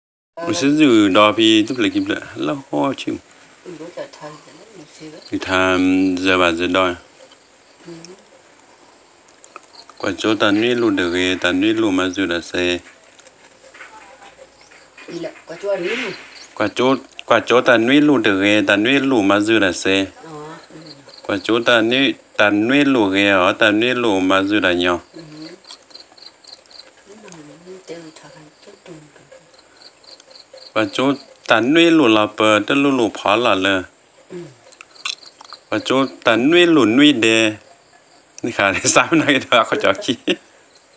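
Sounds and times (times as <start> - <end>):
insect drone: 0.4 - 40.9
person speaking: 9.9 - 12.9, 38.4 - 40.4.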